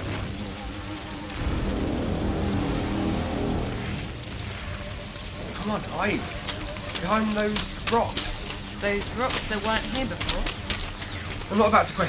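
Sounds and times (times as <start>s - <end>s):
deep spaceship engine rumble: 0.0s - 11.8s.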